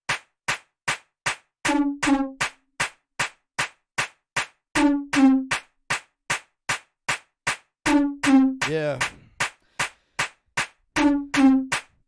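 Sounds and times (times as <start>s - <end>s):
drum machine beat: 0.0s - 12.0s.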